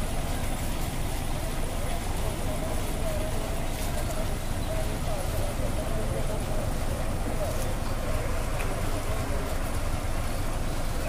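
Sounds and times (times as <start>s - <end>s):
bus engine idling: 0.0s - 11.0s.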